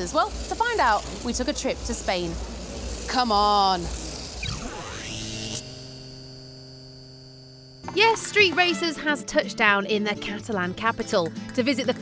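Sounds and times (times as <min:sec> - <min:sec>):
electrical hum with held tones: 0:00.0 - 0:09.3.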